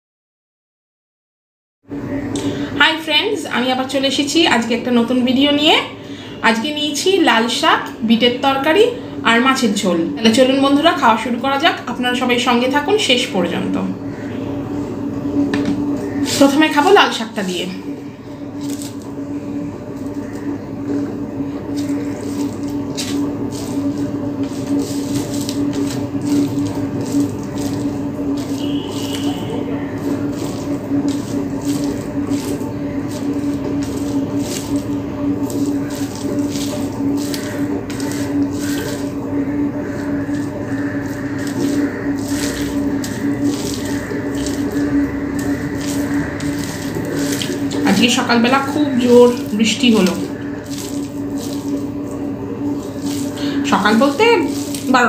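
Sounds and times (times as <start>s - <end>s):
low hum with rushing hiss: 12.7s - 55.0s
fingers mixing wet rice: 15.8s - 16.9s, 18.0s - 55.0s.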